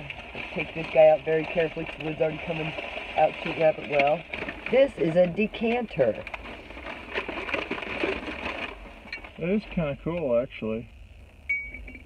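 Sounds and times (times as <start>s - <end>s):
plastic wrapping crinkling: 0.0s - 9.4s.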